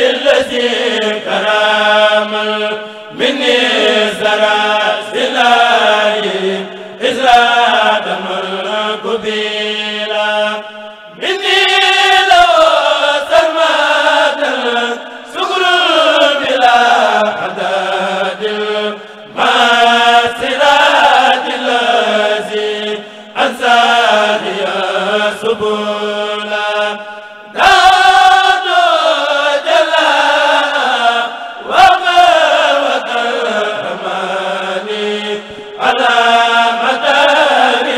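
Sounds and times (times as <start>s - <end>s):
men's choir chanting in unison: 0.0s - 37.9s.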